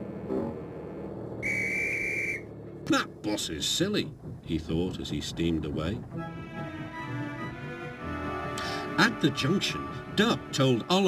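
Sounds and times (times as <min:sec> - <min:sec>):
whistle blast: 0:01.4 - 0:02.5.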